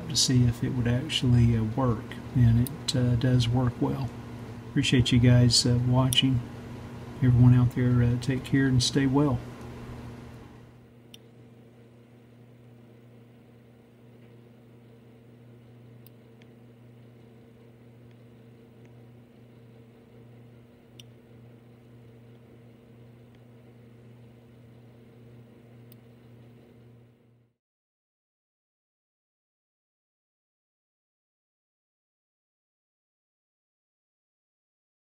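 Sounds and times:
faint electrical hum: 0.0 - 27.6.

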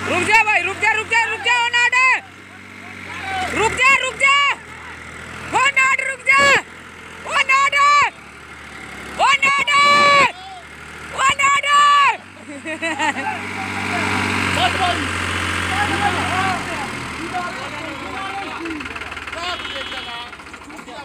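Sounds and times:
diesel tractor engine running: 0.0 - 21.0
men shouting wordless calls: 0.0 - 21.0.

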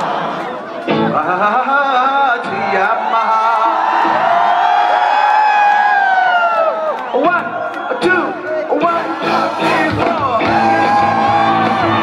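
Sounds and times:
crowd noise: 0.0 - 12.0
live concert music over loudspeakers: 0.0 - 12.0.

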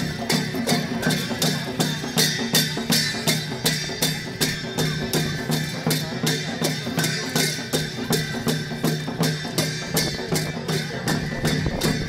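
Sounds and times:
drum and cymbals dance rhythm: 0.0 - 12.0.

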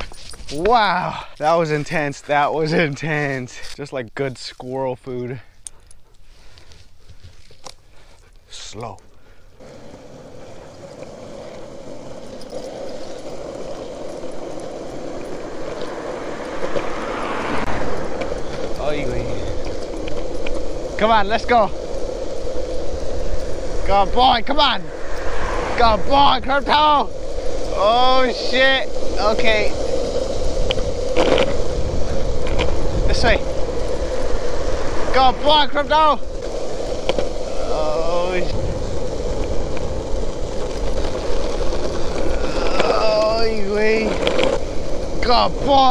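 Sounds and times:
longboard wheels rolling on asphalt: 0.0 - 45.9
wind buffeting microphone: 9.6 - 45.9.

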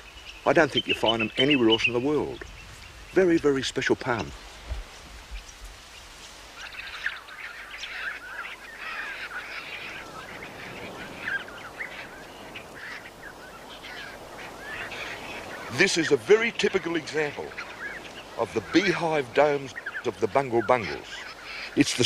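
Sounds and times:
flock of birds calling: 0.0 - 22.0.

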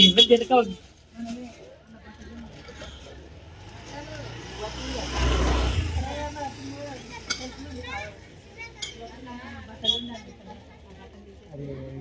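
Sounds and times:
vehicle driving past: 3.4 - 7.3.

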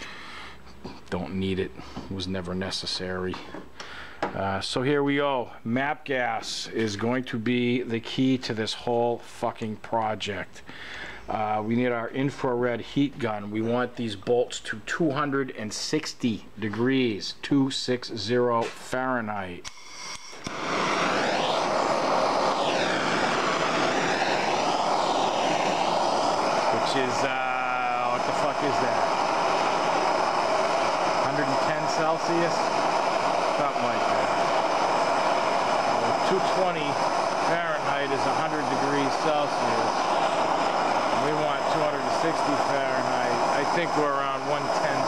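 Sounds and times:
gas torch hissing: 0.0 - 0.8, 19.7 - 45.0.

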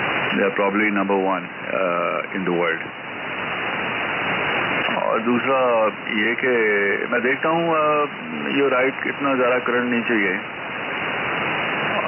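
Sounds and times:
shortwave radio static hiss: 0.0 - 12.0.

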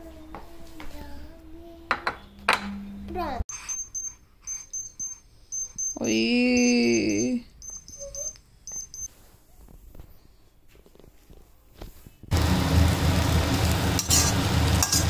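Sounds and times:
faint high-pitched beeps: 3.5 - 9.1
food sizzling in a pan: 12.3 - 15.0.

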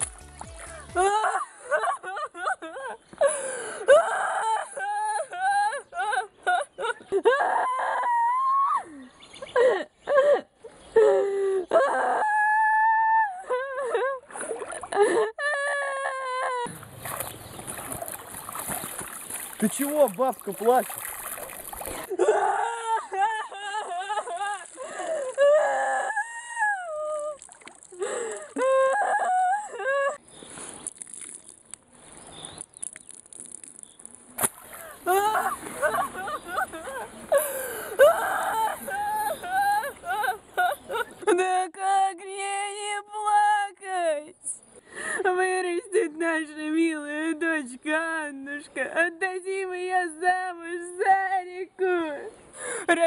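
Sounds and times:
woman wailing and sobbing: 0.5 - 14.3, 14.9 - 16.8, 21.9 - 27.4, 28.0 - 30.2, 34.8 - 44.0.

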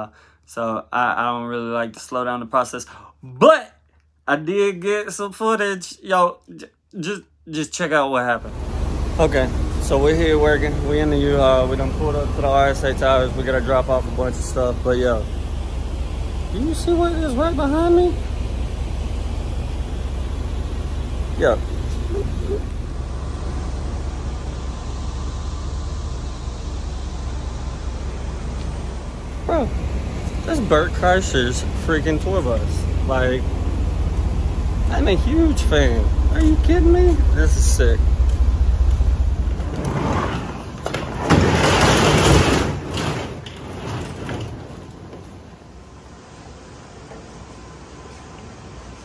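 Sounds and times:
low rumble and hiss outdoors: 0.0 - 49.0
roll-up door rattling: 39.5 - 45.2.

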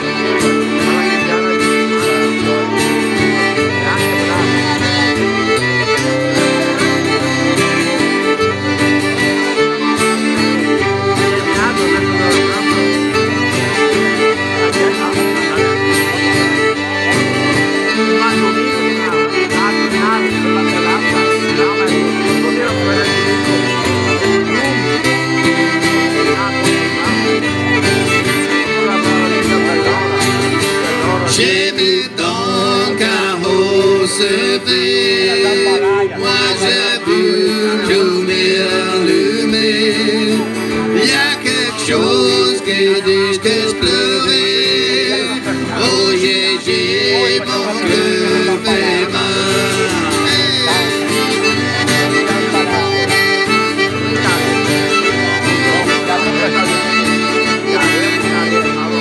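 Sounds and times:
button accordion: 0.0 - 59.0
fiddle playing lead: 0.0 - 59.0
strummed acoustic guitar: 0.0 - 59.0.

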